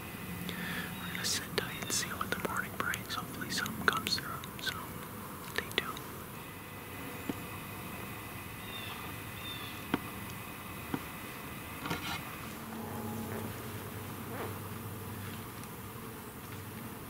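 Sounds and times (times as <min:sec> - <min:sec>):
man whispering: 0:00.8 - 0:06.1.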